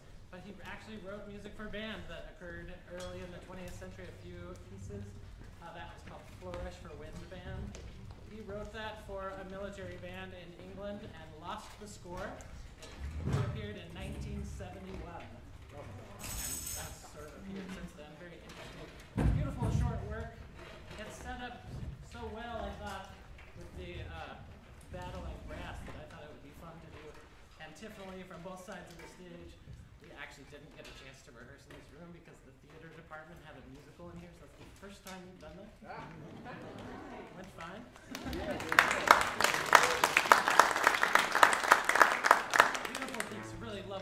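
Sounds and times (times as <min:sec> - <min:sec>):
man speaking to audience: 0:00.0 - 0:36.1, 0:37.1 - 0:44.0
indistinct speech in a hall: 0:00.0 - 0:44.0
small clicks and clinks on stage: 0:14.8 - 0:25.3, 0:25.9 - 0:35.7.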